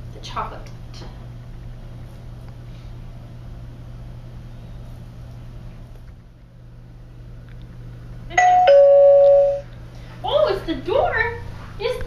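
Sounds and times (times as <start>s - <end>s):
two-tone doorbell chime: 8.4s - 9.7s.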